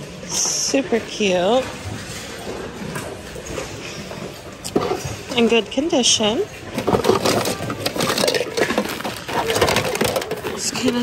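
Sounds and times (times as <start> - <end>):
plastic objects clattering: 1.4 - 11.0.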